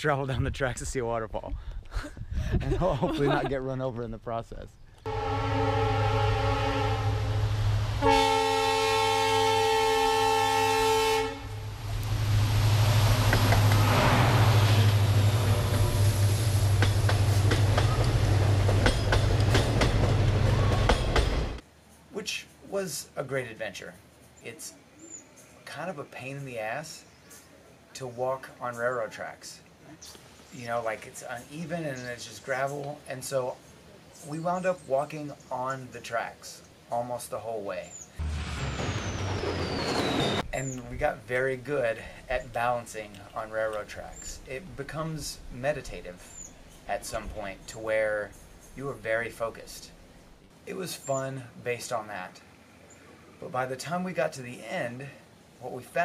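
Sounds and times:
train horn blast: 0:05.1 - 0:16.5
train passing with rumble: 0:05.1 - 0:21.6, 0:38.2 - 0:50.2
whooshing rush: 0:11.6 - 0:18.0, 0:38.2 - 0:40.6
train wheels clacking over joints: 0:16.6 - 0:21.6
low rumble: 0:38.2 - 0:40.7
whistle gliding down in pitch: 0:38.7 - 0:40.4.

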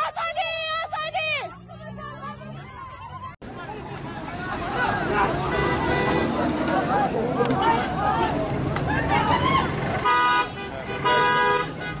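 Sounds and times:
voices in the street: 0:00.0 - 0:12.0
car horn honking: 0:04.5 - 0:06.6, 0:10.0 - 0:12.0.

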